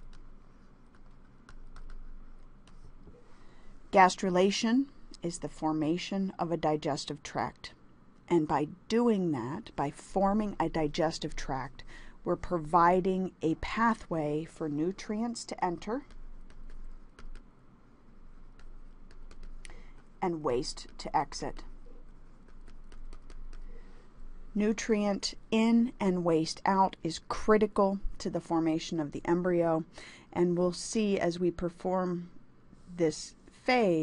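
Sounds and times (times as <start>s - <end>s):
stylus tapping on tablet screen: 0.0s - 2.9s, 16.0s - 17.5s, 18.5s - 23.8s
faint background noise: 0.0s - 34.0s.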